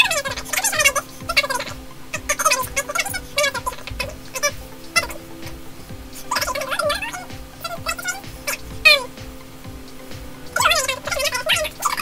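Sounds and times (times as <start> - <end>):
steady low hum: 0.0 - 12.0
sped-up chipmunk-like voice: 6.3 - 9.1.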